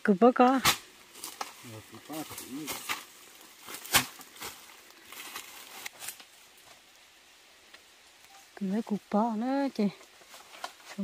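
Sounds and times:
bamboo strips knocking and clattering: 0:00.4 - 0:06.8, 0:10.0 - 0:11.0.

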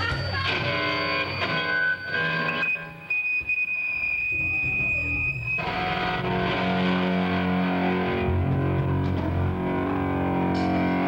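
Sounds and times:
high-pitched whine: 0:00.0 - 0:11.0
electric guitar: 0:04.1 - 0:11.0
bass line: 0:04.3 - 0:11.0.

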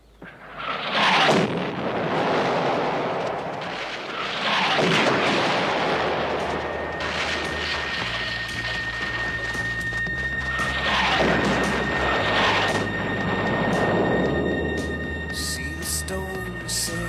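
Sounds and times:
continuous rumbling: 0:00.0 - 0:17.0
loud explosion blast: 0:00.4 - 0:14.8
low sustained music score: 0:05.2 - 0:17.0.

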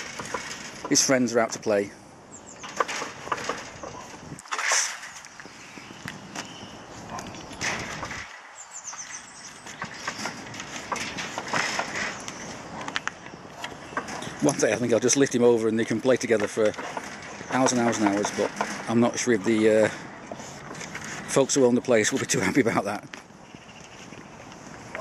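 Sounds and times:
puppy claws scratching wooden gate: 0:00.0 - 0:01.0, 0:02.6 - 0:05.3, 0:16.0 - 0:19.1.

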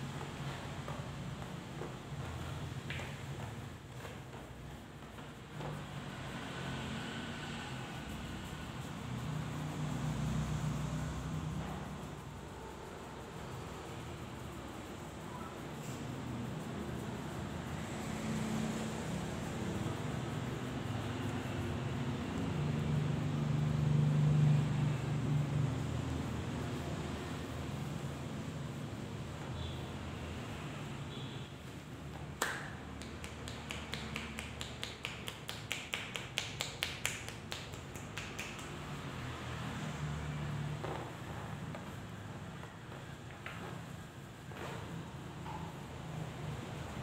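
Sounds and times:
hands clapping on head: 0:02.8 - 0:04.1, 0:32.1 - 0:39.0.

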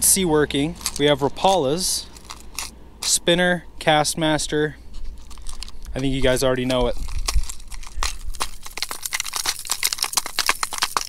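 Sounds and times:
lures clicking in plastic tackle box: 0:05.3 - 0:11.0.

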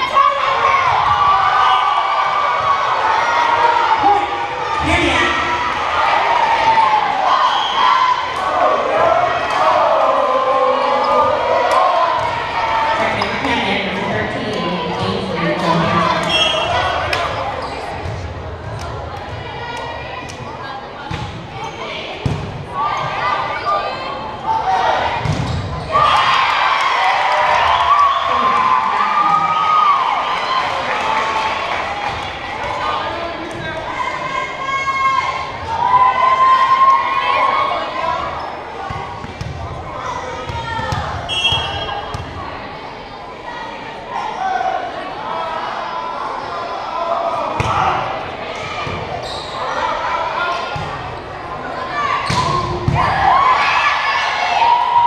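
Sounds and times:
voices of players and spectators: 0:00.0 - 0:55.0.

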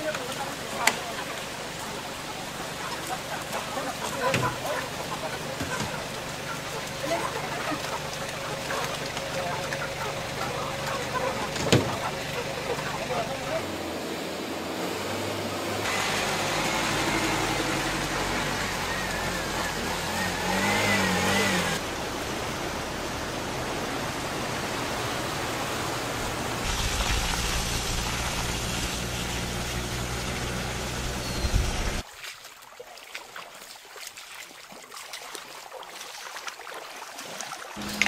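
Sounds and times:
people's voices: 0:00.0 - 0:13.8
car engine running: 0:04.8 - 0:22.4, 0:26.6 - 0:32.0.

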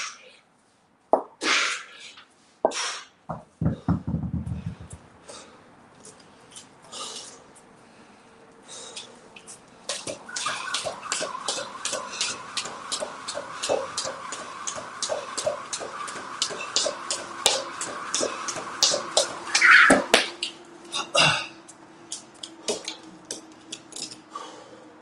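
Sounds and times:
kettlebells thudding on floor: 0:02.7 - 0:05.0
jump rope slapping floor: 0:09.9 - 0:20.6, 0:22.1 - 0:24.2.

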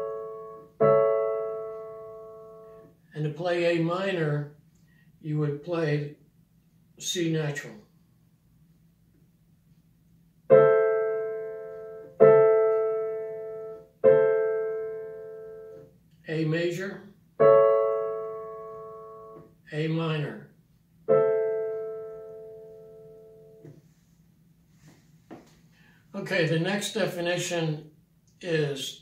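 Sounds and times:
digital piano chords: 0:00.0 - 0:03.0, 0:10.5 - 0:20.3, 0:21.0 - 0:23.8
person speaking: 0:07.0 - 0:07.9, 0:16.2 - 0:17.1, 0:19.7 - 0:20.5, 0:26.1 - 0:29.0.

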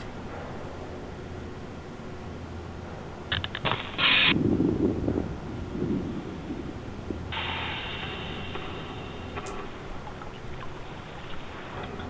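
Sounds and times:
low rumbling: 0:00.0 - 0:12.0
hiss: 0:05.8 - 0:11.9.

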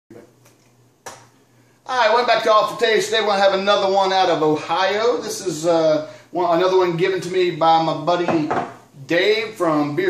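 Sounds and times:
low steady hum: 0:00.1 - 0:10.0
man talking: 0:01.9 - 0:10.0.

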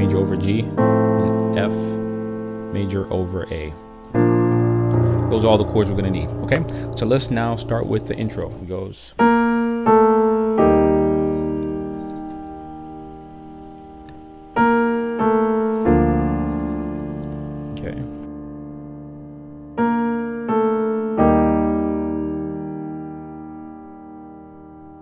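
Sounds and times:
slow piano melody: 0:00.0 - 0:25.0.

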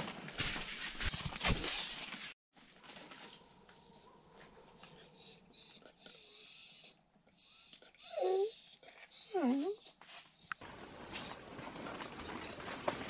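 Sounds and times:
dog whining: 0:05.1 - 0:10.6.

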